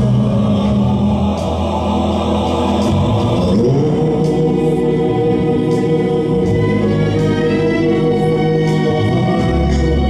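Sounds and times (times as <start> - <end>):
band playing: 0.0 - 10.0
choir-like backing vocals: 0.0 - 10.0.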